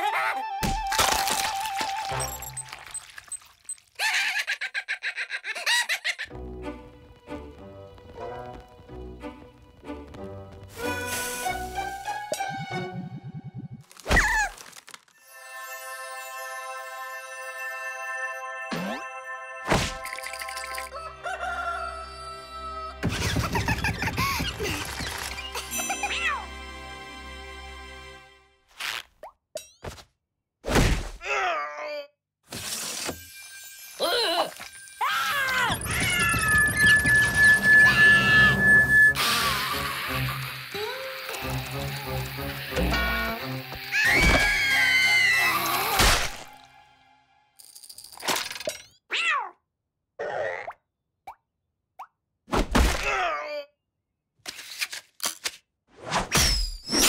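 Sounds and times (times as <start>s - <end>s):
high-pitched cartoon cackling: 0.0s - 0.6s, 4.0s - 6.3s
cartoon glass crash: 19.6s - 20.9s.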